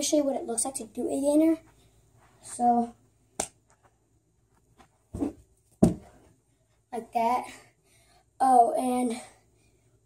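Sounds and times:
bare feet landing on carpet: 5.1 - 6.2.

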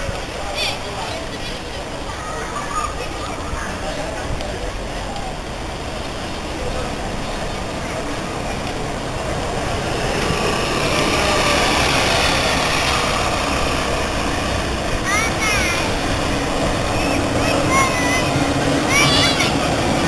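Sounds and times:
electric tram approaching: 0.0 - 20.0.

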